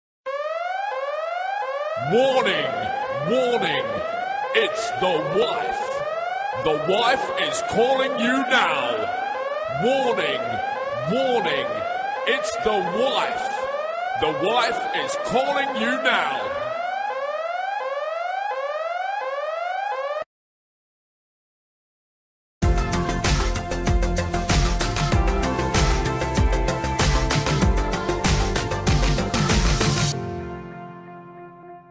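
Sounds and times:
electronic siren whoop tone: 0.3s - 20.2s.

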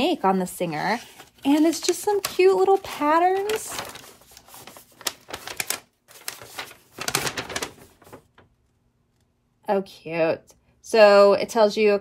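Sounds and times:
paper crackling and rustling: 0.2s - 8.6s.

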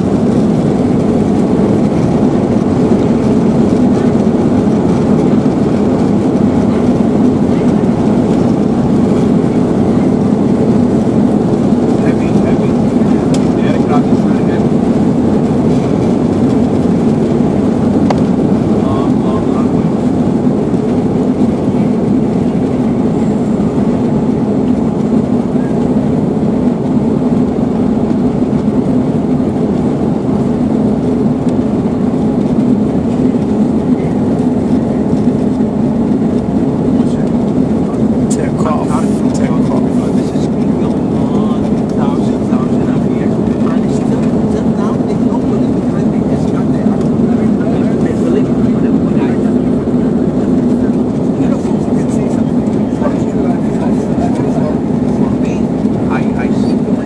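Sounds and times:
jet engines droning in cabin: 0.0s - 57.0s.

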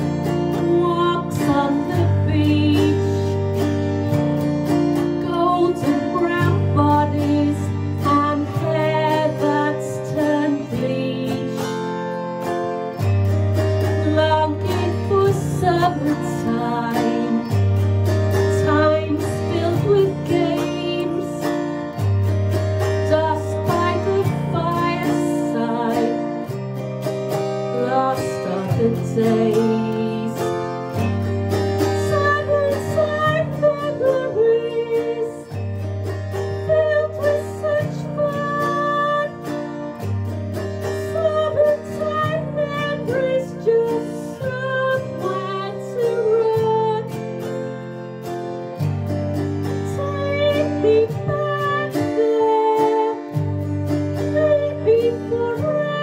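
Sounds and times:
woman singing: 0.0s - 48.2s, 48.9s - 56.0s
autoharp strummed: 0.0s - 56.0s.

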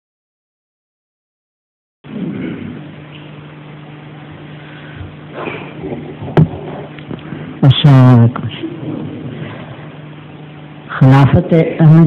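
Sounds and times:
low hum with hiss: 2.1s - 12.0s.

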